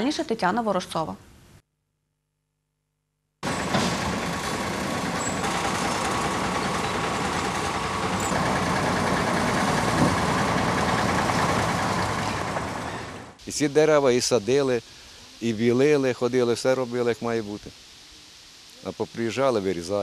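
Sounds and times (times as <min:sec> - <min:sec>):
truck engine running: 0:03.4 - 0:13.4.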